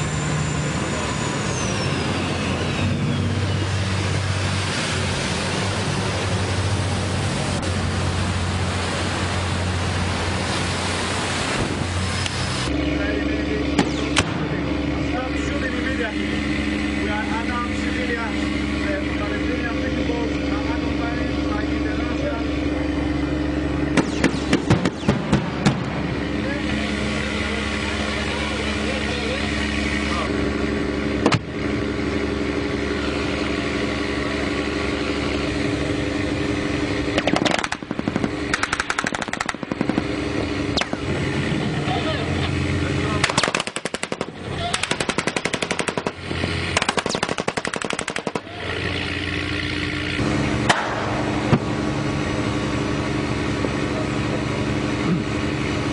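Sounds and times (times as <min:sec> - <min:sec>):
boat engine drone: 0:00.0 - 0:55.9
machine-gun fire: 0:24.0 - 0:25.9, 0:37.2 - 0:40.1, 0:43.2 - 0:48.5.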